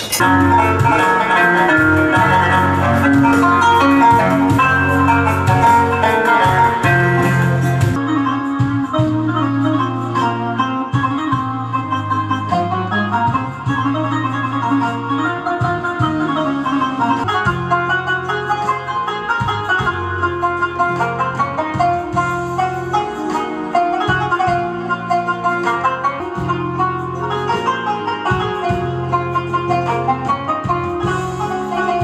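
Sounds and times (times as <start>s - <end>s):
electronic keyboard melody: 0.2s - 32.0s.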